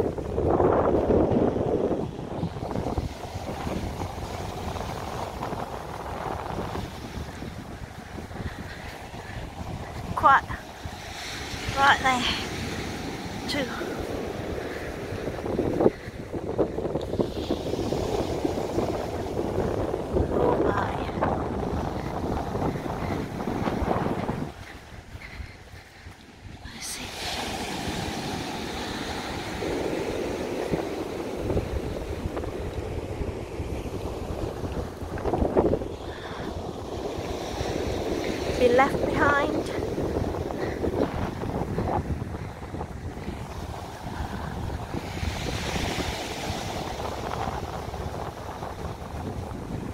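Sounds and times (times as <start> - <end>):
surf breaking on beach: 0.0 - 25.3, 26.4 - 49.9
wind buffeting microphone: 0.0 - 49.9.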